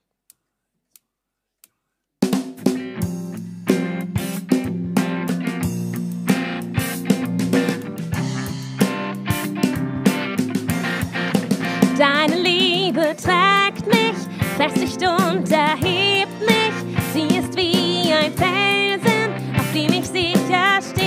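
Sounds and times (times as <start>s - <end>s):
drum kit: 2.2s - 21.0s
electric guitar: 2.6s - 21.0s
live band playing: 2.6s - 21.0s.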